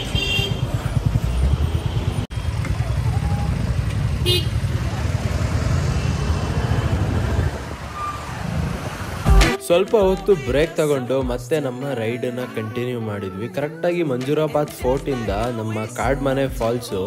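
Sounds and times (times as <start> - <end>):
motorcycle engine rumble: 0.0 - 10.6
wind on microphone: 6.3 - 9.3.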